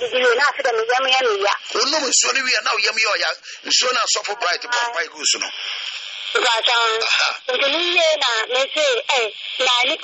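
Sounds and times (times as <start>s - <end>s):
person speaking over radio: 3.7s - 5.6s.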